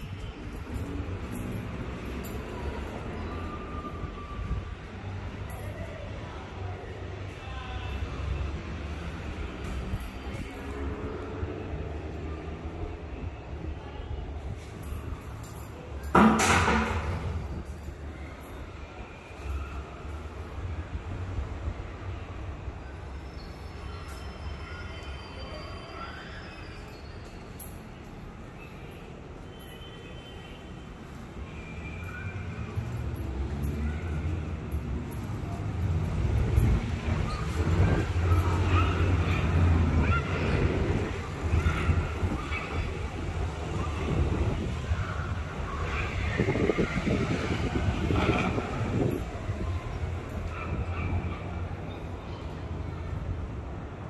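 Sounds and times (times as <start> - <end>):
wind buffeting microphone: 40.0 - 51.2.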